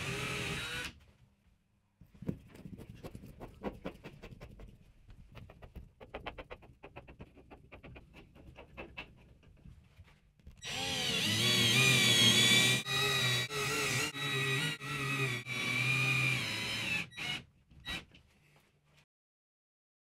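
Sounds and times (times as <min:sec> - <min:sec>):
cordless drill motor whining: 0:00.0 - 0:01.0, 0:10.6 - 0:18.1.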